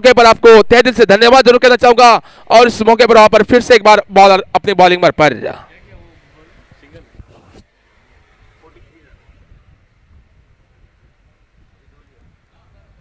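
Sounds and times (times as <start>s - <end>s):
low outdoor ambience: 0.0s - 13.0s
faint distant voices: 5.6s - 13.0s.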